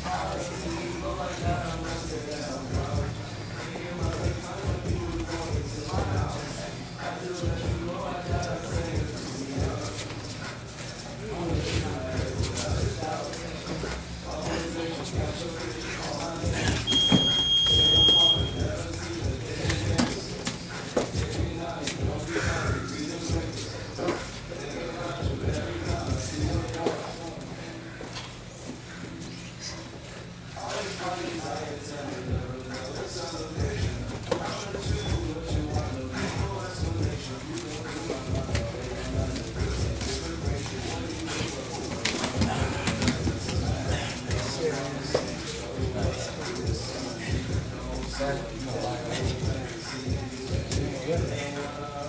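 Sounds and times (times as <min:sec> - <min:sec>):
grunts and heavy breathing: 0:18.6 - 0:30.5, 0:33.4 - 0:48.0.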